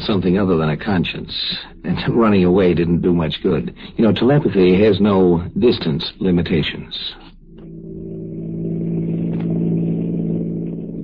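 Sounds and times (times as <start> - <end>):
car engine droning: 7.4 - 11.0.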